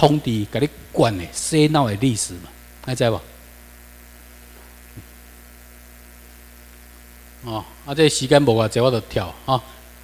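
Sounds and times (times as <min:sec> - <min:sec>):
low electrical mains hum: 0:00.0 - 0:10.0.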